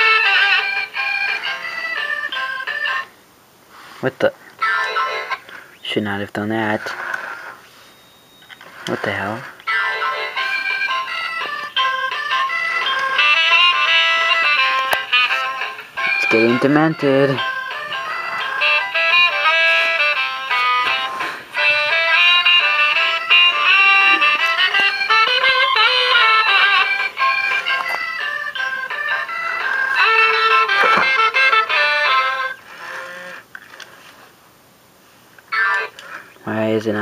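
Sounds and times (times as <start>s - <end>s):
tinny electronic tune from toy: 7.8s - 8.7s, 9.7s - 33.4s.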